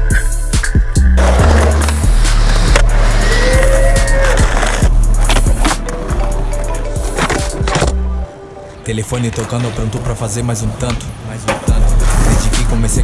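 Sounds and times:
hip-hop beat with deep bass: 0.0 - 8.2, 10.8 - 13.0
skateboard wheels rolling on pavement: 1.2 - 8.1.

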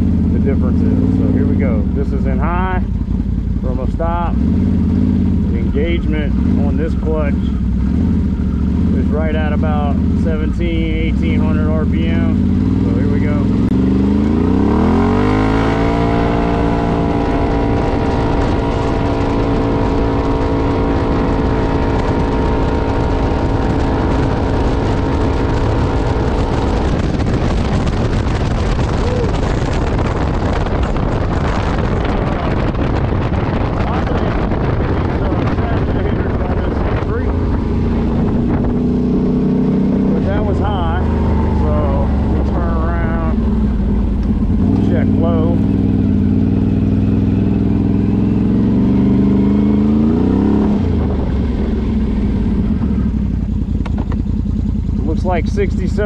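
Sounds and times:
atv engine running: 0.0 - 56.0
wind rushing over microphone: 0.0 - 56.0.

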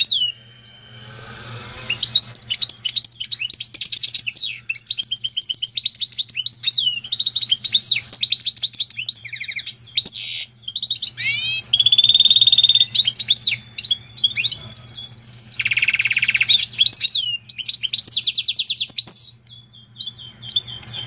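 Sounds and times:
bird singing trills and whistles: 0.0 - 1.2, 1.8 - 21.0.

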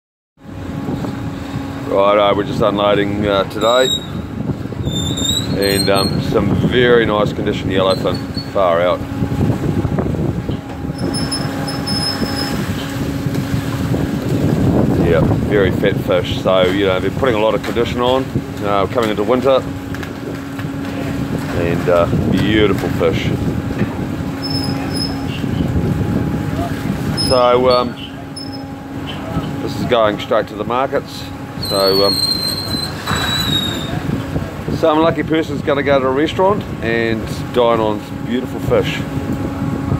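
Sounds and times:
low mechanical rumble: 0.4 - 39.9
hoist line squealing: 3.6 - 4.2, 4.8 - 6.3, 7.8 - 8.6, 11.0 - 12.9, 24.4 - 25.4, 27.2 - 29.2, 31.6 - 34.0.

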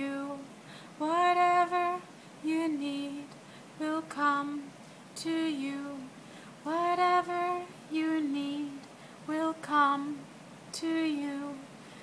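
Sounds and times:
woman singing unaccompanied: 0.0 - 11.8.

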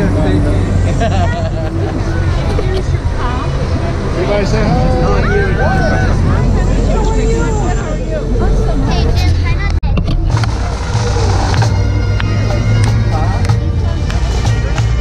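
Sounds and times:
people chatting and laughing: 0.0 - 15.0
steady low rumble: 0.0 - 15.0
bagpipes playing: 10.4 - 15.0.

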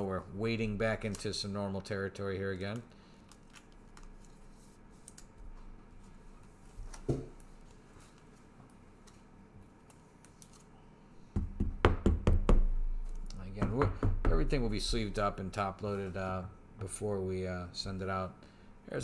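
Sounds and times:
knocks and thumps on tabletop: 13.6 - 14.5.

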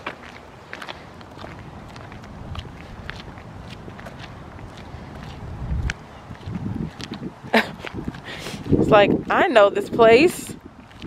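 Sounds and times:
footsteps on concrete: 0.0 - 11.0.

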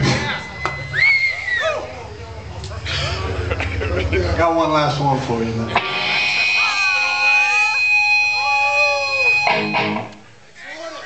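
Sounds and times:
low sliding tone: 0.0 - 9.6
high-pitched feedback whine: 0.0 - 10.1.

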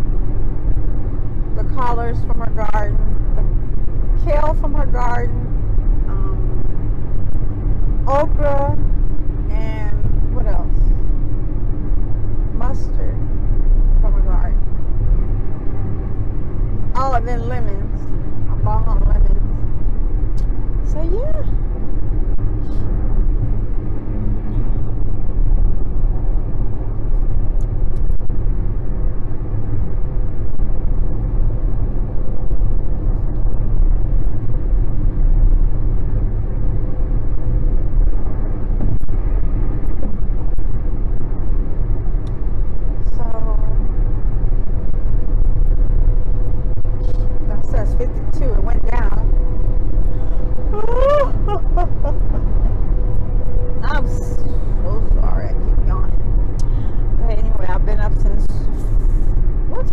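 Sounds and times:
car engine and tyres rumbling: 0.0 - 59.9.

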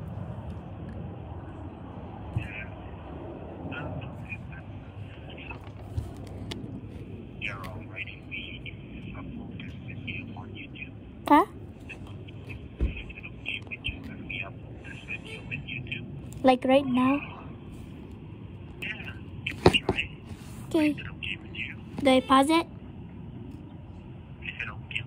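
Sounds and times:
indistinct voices over phone: 2.4 - 2.9, 3.7 - 22.7, 24.3 - 25.0.

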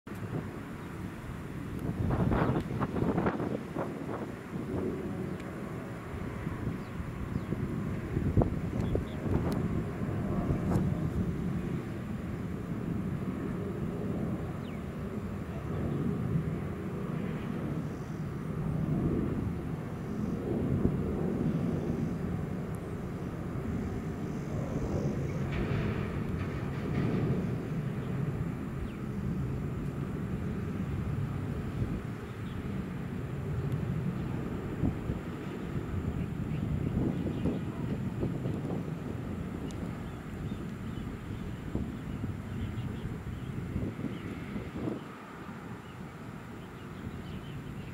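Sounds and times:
jet engines rumbling: 0.1 - 47.9.

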